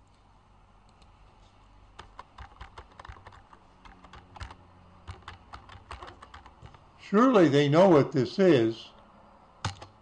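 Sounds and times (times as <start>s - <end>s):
keyboard key clicks: 9.6s - 10.0s.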